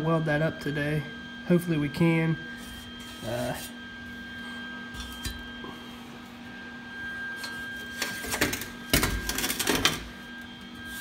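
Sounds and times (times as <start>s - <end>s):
welder electrical hum: 0.0s - 11.0s.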